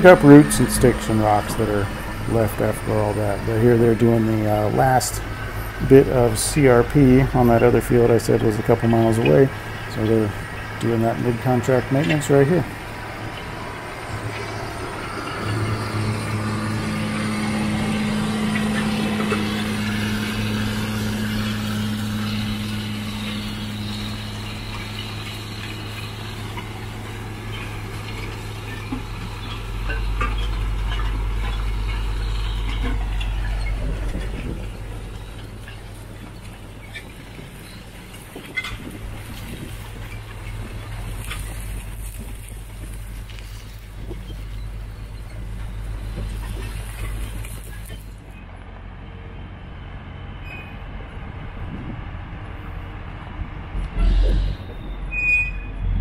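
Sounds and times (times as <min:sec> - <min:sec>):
deeper hum: 0:00.0 - 0:56.0
tractor diesel engine under load: 0:00.0 - 0:56.0.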